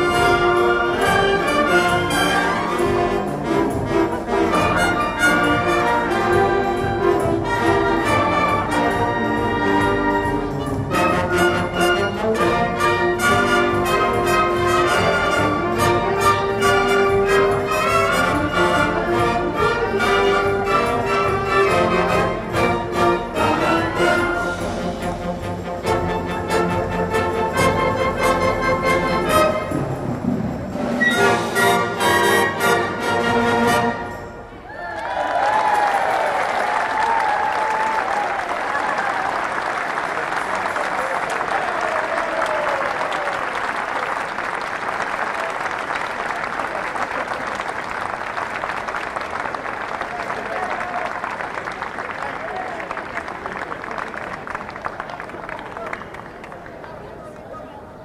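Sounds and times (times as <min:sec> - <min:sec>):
symphonic band playing: 0:00.0 - 0:34.7.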